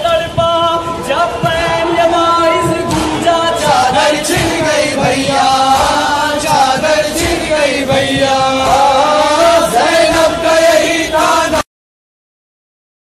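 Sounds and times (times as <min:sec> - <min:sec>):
man chanting a lament: 0:00.0 - 0:11.1
voices joining in chant: 0:00.0 - 0:11.6.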